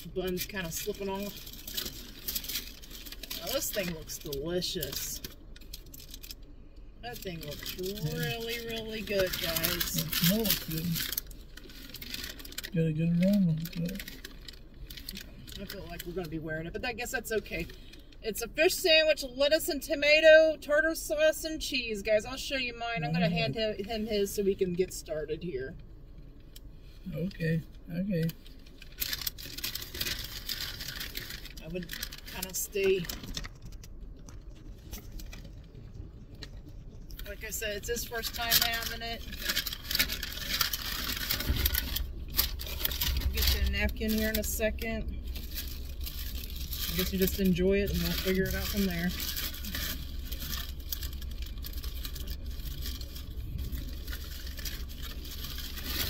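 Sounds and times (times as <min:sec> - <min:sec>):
paper food wrapper rustling: 0:00.5 - 0:06.5, 0:07.1 - 0:16.3, 0:28.3 - 0:56.0
person speaking: 0:03.3 - 0:05.3, 0:07.0 - 0:11.2, 0:12.7 - 0:14.1, 0:22.2 - 0:25.8, 0:27.1 - 0:28.4, 0:31.6 - 0:33.3, 0:37.2 - 0:39.6, 0:43.2 - 0:45.1, 0:46.9 - 0:49.3
car cabin rumble: 0:07.0 - 0:26.5, 0:27.1 - 0:56.0.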